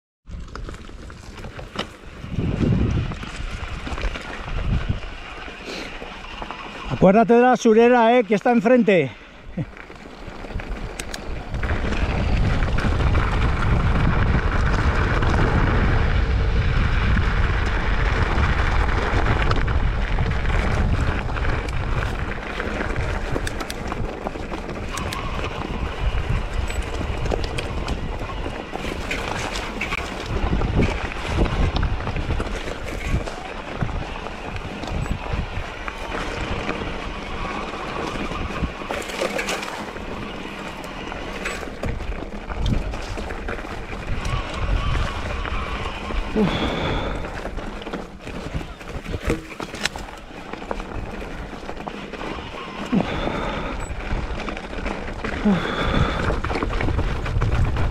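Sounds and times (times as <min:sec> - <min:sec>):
wind rumbling on microphone: 0:00.3 - 0:07.3, 0:09.1 - 0:57.9
bike tyres on gravel: 0:00.3 - 0:57.9
bike clattering on rocks: 0:18.7 - 0:57.9.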